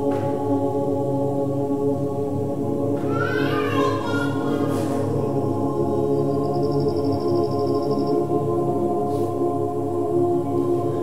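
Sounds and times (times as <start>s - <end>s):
mixed choir holding a chord: 0.0s - 11.0s.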